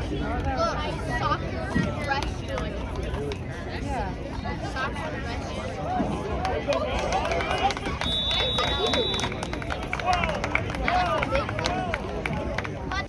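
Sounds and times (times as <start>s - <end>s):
people shouting and talking: 0.0s - 13.0s
whistle blast: 8.0s - 9.5s.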